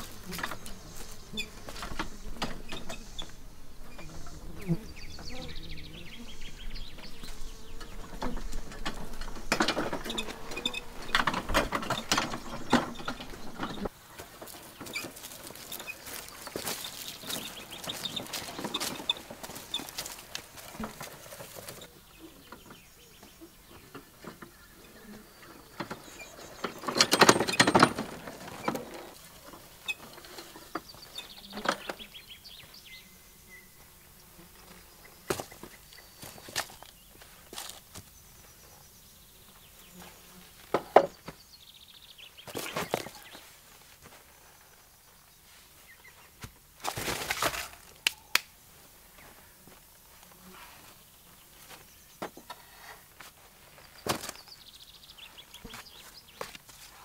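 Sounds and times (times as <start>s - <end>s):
wheelbarrow rolling over stones: 0.0s - 5.8s, 6.4s - 24.6s, 25.6s - 32.3s, 42.2s - 43.4s, 46.8s - 47.9s
rustling in dry leaves: 6.2s - 22.1s, 42.4s - 57.0s
footsteps crunching on gravel: 12.4s - 21.8s, 35.3s - 38.2s.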